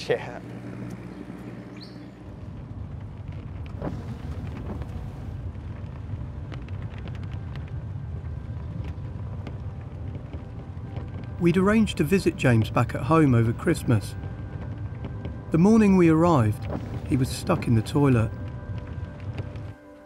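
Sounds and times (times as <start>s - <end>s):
moving vehicle rumble: 0.0s - 20.0s.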